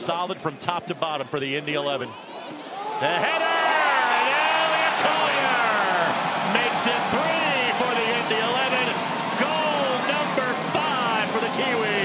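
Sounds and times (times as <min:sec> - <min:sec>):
crowd celebrating: 0:02.5 - 0:12.0.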